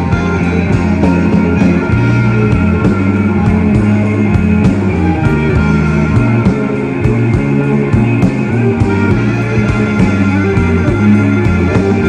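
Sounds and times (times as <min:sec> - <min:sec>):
drums keeping a beat: 0:00.0 - 0:12.0
electric bass line: 0:00.0 - 0:12.0
electric guitar lines: 0:00.0 - 0:12.0.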